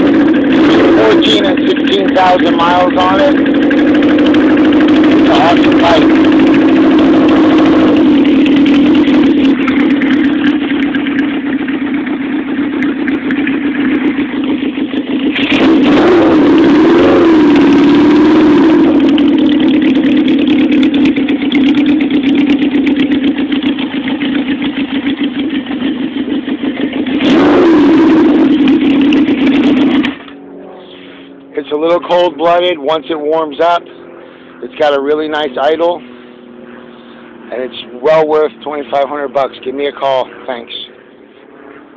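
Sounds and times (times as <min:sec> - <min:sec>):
motorcycle engine revving: 0:00.0 - 0:41.9.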